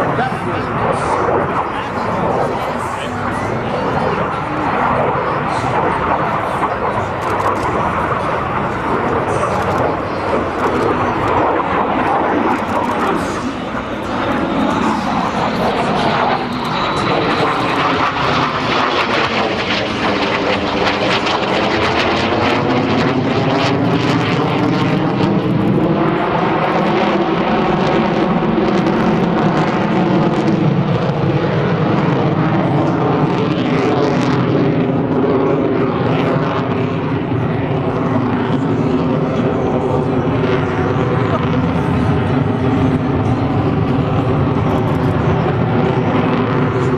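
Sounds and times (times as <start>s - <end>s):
fighter jet flying overhead: 0.0s - 46.9s.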